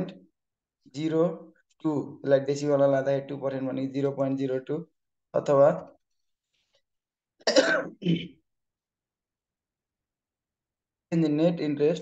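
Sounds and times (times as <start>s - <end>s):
person clearing throat: 7.4s - 8.4s.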